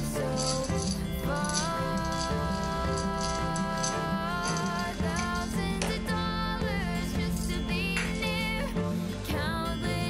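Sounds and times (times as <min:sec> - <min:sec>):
rattling percussion beat: 0:00.0 - 0:06.2
steady bass line: 0:00.0 - 0:10.0.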